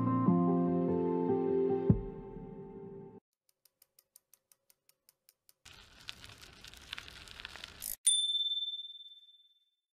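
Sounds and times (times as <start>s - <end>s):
high bell ding: 8.0s - 9.6s.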